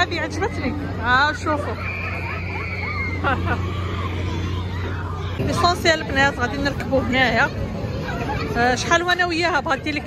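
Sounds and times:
crowd babble: 0.0s - 10.0s
low machine hum: 0.0s - 10.0s.

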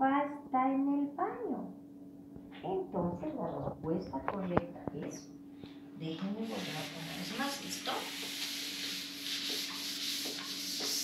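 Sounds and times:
eraser rubbing on whiteboard: 6.4s - 11.0s.

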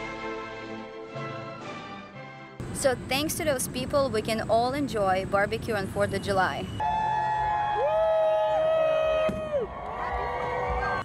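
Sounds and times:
crowd whooping and cheering: 6.8s - 11.0s.

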